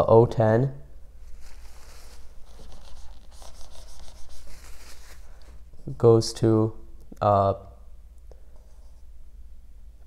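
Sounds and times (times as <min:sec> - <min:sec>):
rubbing whiteboard: 0:01.3 - 0:05.6
marker scratching on whiteboard: 0:01.6 - 0:05.3.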